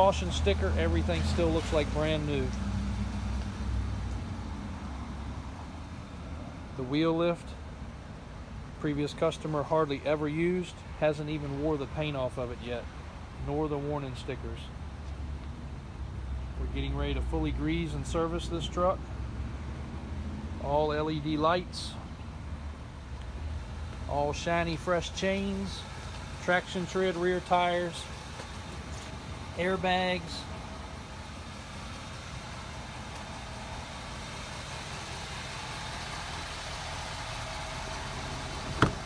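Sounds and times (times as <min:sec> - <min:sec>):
diesel engine idling: 0:00.0 - 0:39.0.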